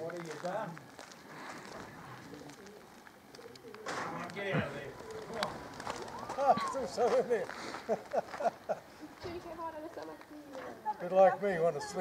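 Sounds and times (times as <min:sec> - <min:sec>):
pigeons cooing: 0:01.3 - 0:09.1.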